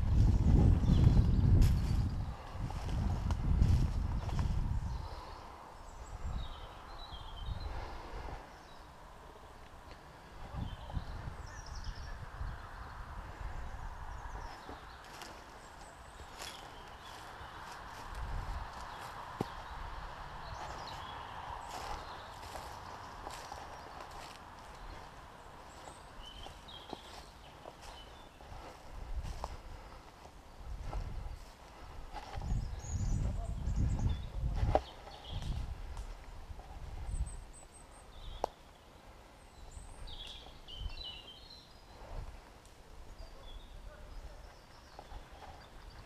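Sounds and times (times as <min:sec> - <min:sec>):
footsteps crunching through dry leaves: 0:00.0 - 0:04.8, 0:14.3 - 0:37.0.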